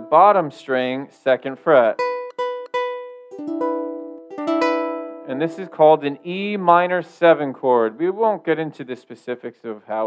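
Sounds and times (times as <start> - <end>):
ukulele chord strums: 1.5 - 8.1.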